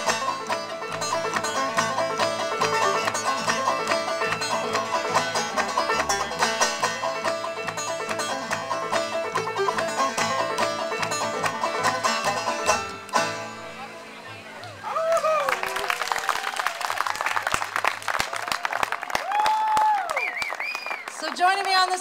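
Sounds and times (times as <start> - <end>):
banjo: 0.0 - 14.5
upright bass: 0.0 - 14.8.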